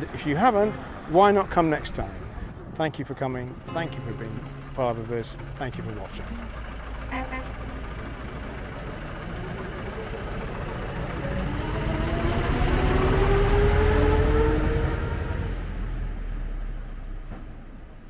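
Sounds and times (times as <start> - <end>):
bus engine rumbling with whine: 0.0 - 18.0.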